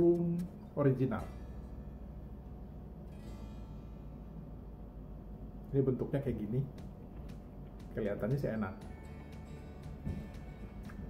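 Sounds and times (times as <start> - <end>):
faint plucked string music: 0.0 - 11.0
low room hum: 0.0 - 11.0.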